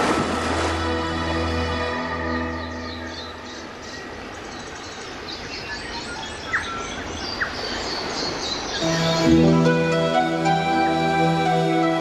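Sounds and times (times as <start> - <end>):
outdoor background noise: 0.0 - 12.0
small birds chirping: 2.5 - 10.2
soft music chord: 8.8 - 12.0.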